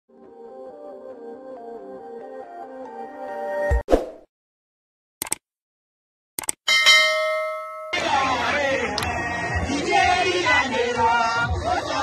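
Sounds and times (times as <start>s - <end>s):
notification bell chime: 6.7s - 8.1s.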